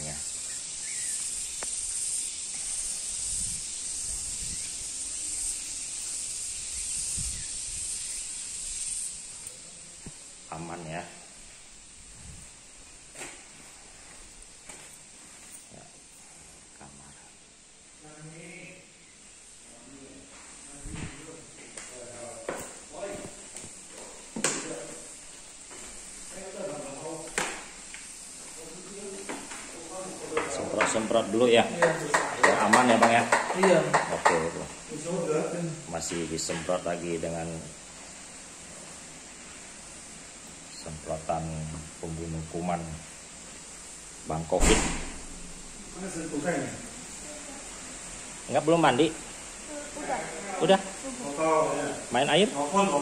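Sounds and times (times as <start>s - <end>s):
crickets chirping: 0.0s - 53.0s
soft footsteps: 11.4s - 16.2s, 20.3s - 31.2s
footsteps on wooden stairs: 13.1s - 15.6s, 21.7s - 26.2s.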